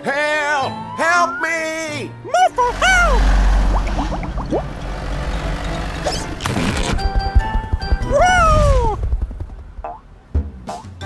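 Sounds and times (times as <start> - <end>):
cartoon truck engine rumbling: 2.5 - 10.6
short rising chirps: 2.7 - 7.3.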